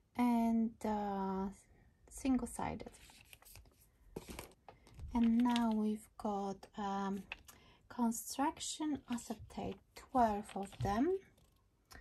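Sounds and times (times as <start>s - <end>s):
paper packs rustling and scraping: 2.9s - 5.8s, 10.2s - 11.2s.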